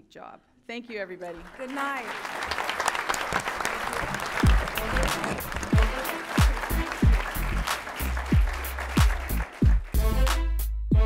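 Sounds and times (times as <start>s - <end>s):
audience applause: 1.3s - 10.3s
deep kick drum beat: 5.7s - 7.6s, 8.2s - 10.2s.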